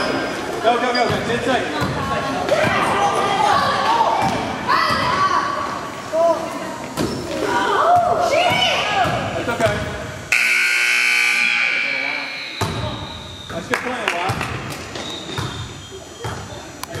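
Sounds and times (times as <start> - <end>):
basketballs bouncing on court: 1.0 - 3.1, 4.1 - 5.3, 7.0 - 10.0, 14.2 - 17.0
scoreboard buzzer: 10.3 - 12.6.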